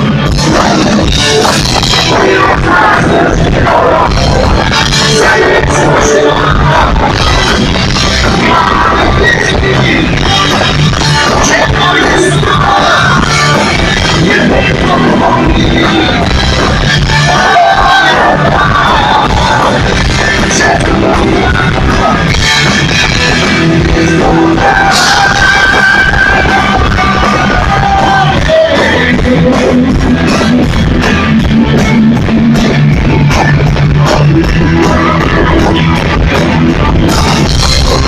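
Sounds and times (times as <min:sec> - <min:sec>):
punk rock band playing: 0:00.0 - 0:38.0.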